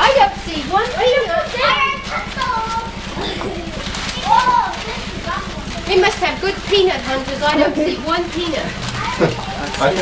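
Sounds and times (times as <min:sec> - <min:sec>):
children calling and chattering: 0:00.0 - 0:10.0
steady low hum: 0:00.0 - 0:10.0.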